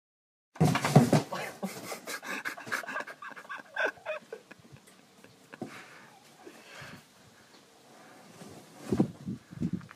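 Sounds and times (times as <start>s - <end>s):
person giggling breathily: 1.4s - 6.9s.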